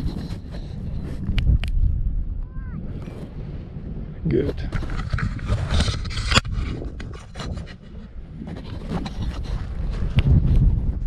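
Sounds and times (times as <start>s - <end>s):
wind buffeting microphone: 0.0s - 11.0s
clicks and rustles of gear: 4.7s - 10.7s.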